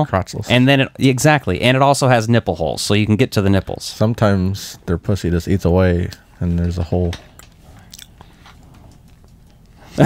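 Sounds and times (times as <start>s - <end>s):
person speaking: 0.0s - 8.1s.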